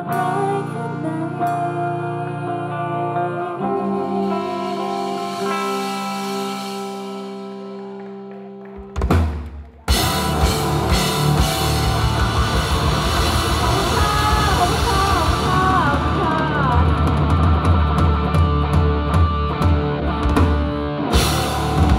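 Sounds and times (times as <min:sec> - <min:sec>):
electric guitar: 0:00.0 - 0:21.9
rock band playing: 0:00.0 - 0:21.9
loud drum hit: 0:09.1 - 0:18.8.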